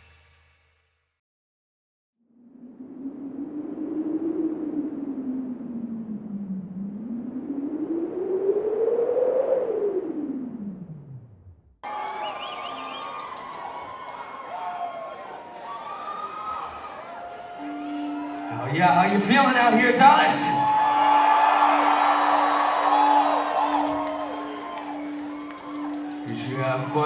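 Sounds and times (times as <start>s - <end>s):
hollow noisy howl sliding in pitch: 2.3s - 11.2s, 20.6s - 27.0s.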